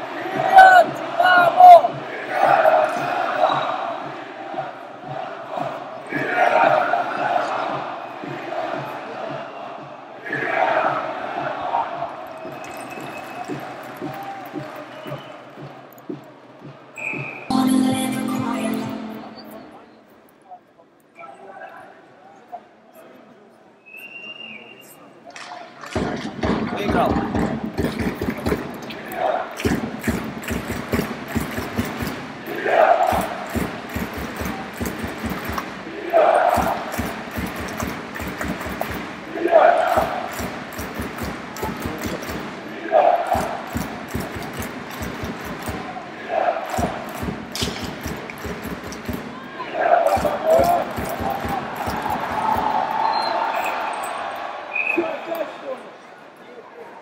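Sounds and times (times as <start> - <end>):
crowd chanting in unison: 0.0 - 12.6, 17.5 - 20.1, 28.9 - 55.3.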